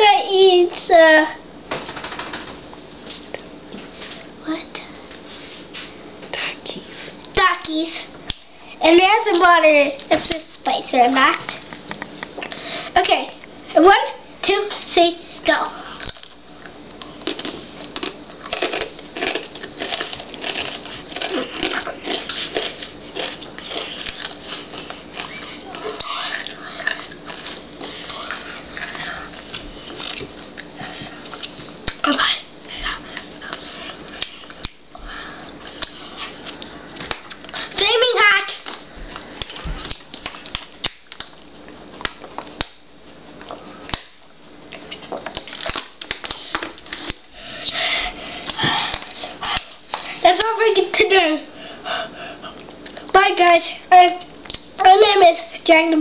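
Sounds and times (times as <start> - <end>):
child crunching chips: 17.0 - 31.6.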